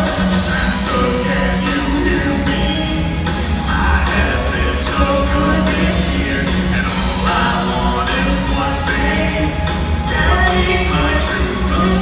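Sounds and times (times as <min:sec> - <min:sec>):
live band playing upbeat pop song: 0:00.0 - 0:12.0.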